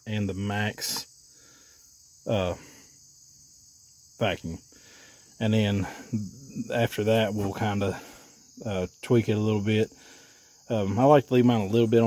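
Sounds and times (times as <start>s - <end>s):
crickets chirring: 0.0s - 12.0s
man saying uh: 2.3s - 2.6s, 10.7s - 12.0s.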